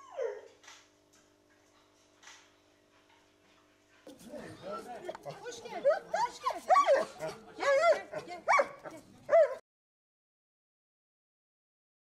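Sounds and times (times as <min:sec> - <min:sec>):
dog whining and yelping: 0:00.0 - 0:00.5, 0:05.3 - 0:09.6.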